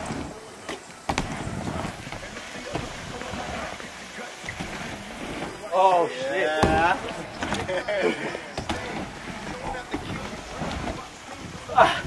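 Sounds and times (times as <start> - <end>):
bike tyres rolling on ramp: 0.0 - 12.0.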